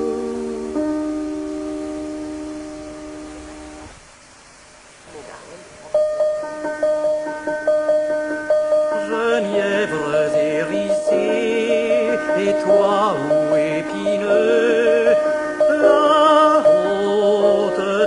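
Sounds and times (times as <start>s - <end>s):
classical singing voice with vibrato: 0.0s - 1.9s, 8.9s - 18.0s
piano playing: 0.0s - 3.9s, 5.9s - 18.0s.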